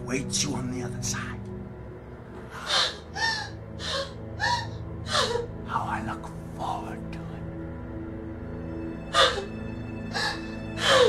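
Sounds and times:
low steady drone: 0.0 - 11.0
person gasping and sobbing: 9.0 - 11.0.

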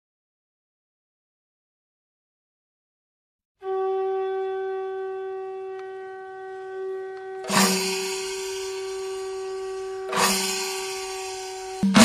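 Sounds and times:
conch shell blown: 3.6 - 12.0
crashing percussion strikes: 7.4 - 12.0.

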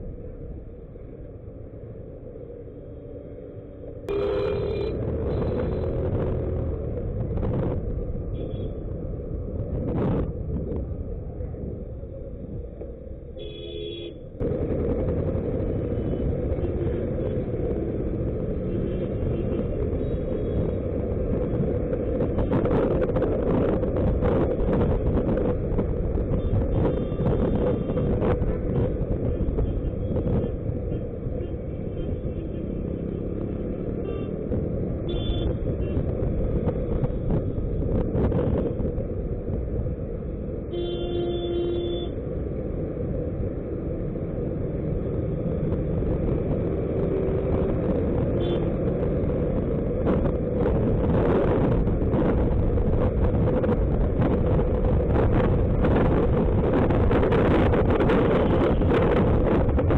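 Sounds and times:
scooter wind and road rumble: 0.0 - 59.9
vehicle horn honking: 4.1 - 5.0, 40.7 - 42.1.

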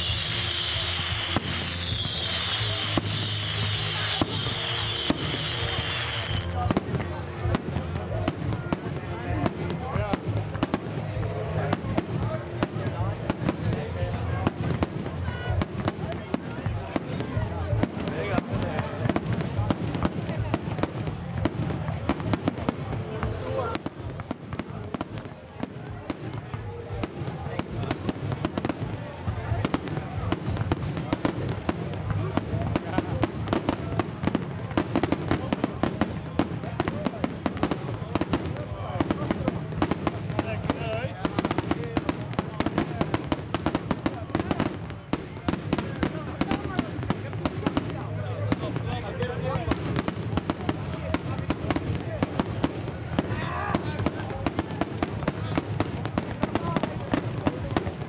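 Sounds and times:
high whistling tone: 0.0 - 6.5
fireworks bangs and crackles: 0.0 - 58.0.

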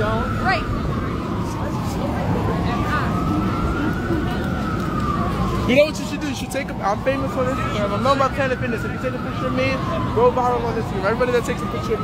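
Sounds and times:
emergency siren wailing: 0.0 - 12.0
street noise: 0.0 - 12.0.

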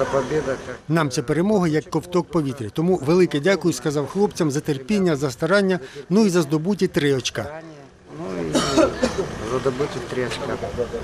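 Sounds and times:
man talking: 0.0 - 11.0
steady background noise: 0.0 - 11.0.

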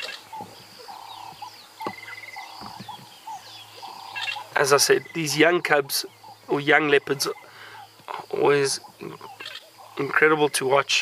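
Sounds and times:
high insect buzz: 0.0 - 11.0
wild birds calling: 0.0 - 11.0.

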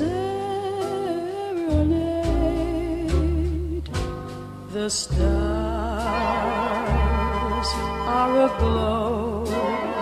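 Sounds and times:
jazz backing band: 0.0 - 10.0.

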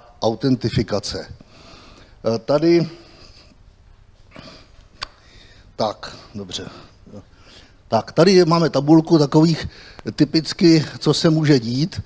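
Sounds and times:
man speaking: 0.0 - 1.4, 2.2 - 3.2, 5.8 - 7.3, 7.9 - 12.0.

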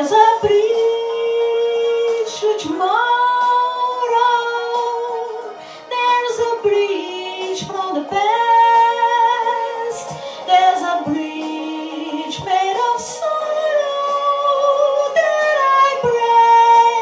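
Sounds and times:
woman singing slow song: 0.0 - 17.0.

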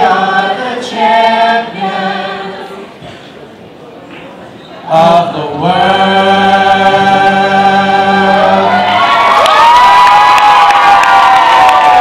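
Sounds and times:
vocal group singing chord: 0.0 - 3.2, 4.8 - 9.0
audience cheering: 8.4 - 12.0
high whoops: 8.7 - 12.0.

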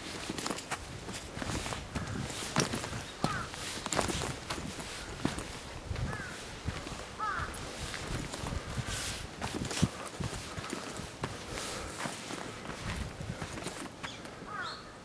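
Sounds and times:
footsteps crunching on dirt trail: 0.0 - 14.7.

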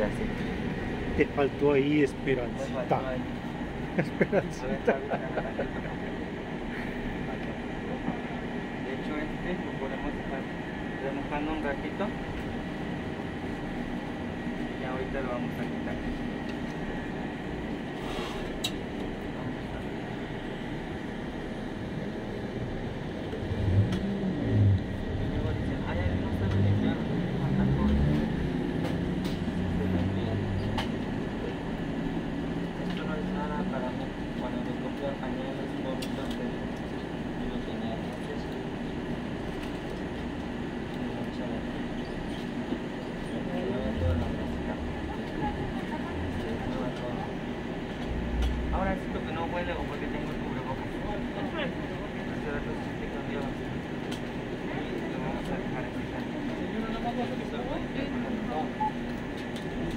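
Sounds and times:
indoor store hum: 0.0 - 59.9
muffled low voices: 0.0 - 59.9.

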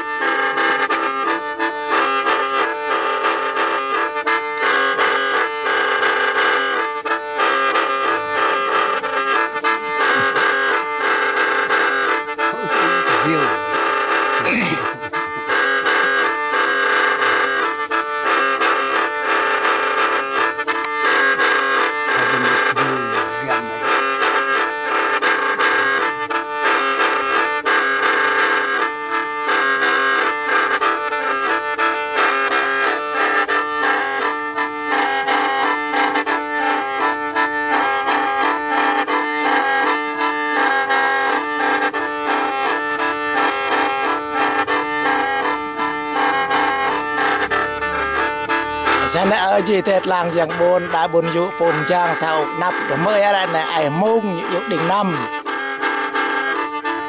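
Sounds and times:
gourd mouth organ playing: 0.0 - 57.0.

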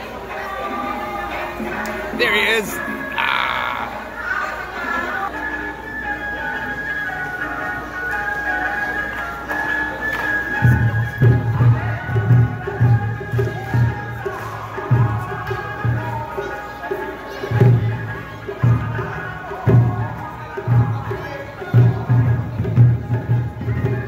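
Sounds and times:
festival music melody: 0.0 - 13.8.

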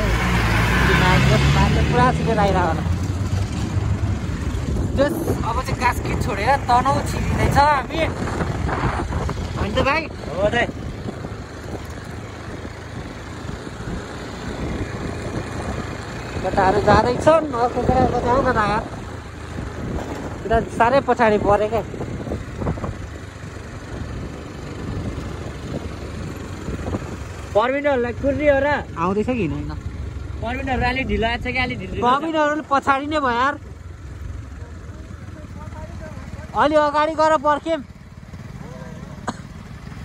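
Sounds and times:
motorbike engine running: 1.0 - 40.0
wind buffeting microphone: 2.8 - 27.5
voices calling out: 32.0 - 40.0.

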